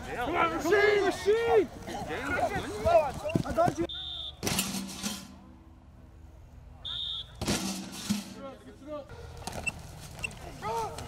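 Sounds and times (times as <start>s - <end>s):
shrill whistle blasts: 3.9s - 4.5s, 6.8s - 7.4s.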